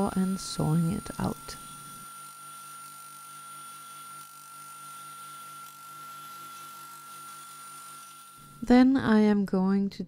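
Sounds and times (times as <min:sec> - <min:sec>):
scroll saw humming: 0:00.0 - 0:08.8.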